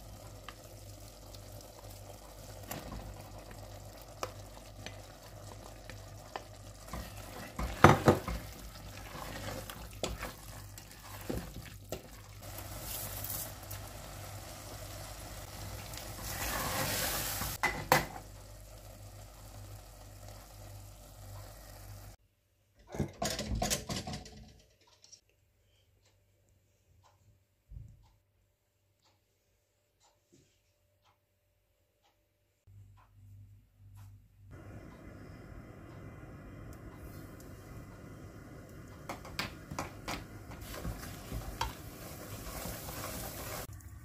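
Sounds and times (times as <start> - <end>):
semolina sizzling in fat: 0.0 - 22.2, 34.6 - 44.0
spatula scraping pan: 6.8 - 12.2, 16.2 - 17.8
low hum with faint hiss: 32.8 - 44.0.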